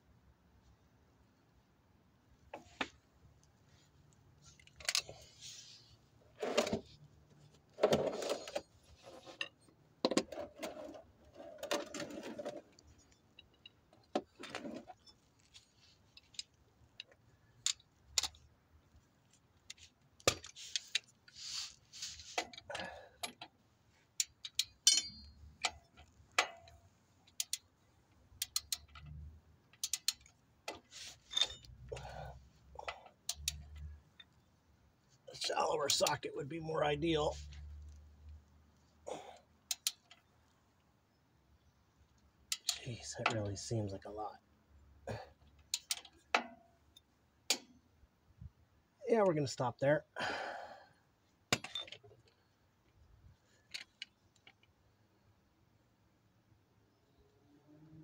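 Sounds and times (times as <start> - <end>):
metal hand tools clinking: 24.5 - 26.7.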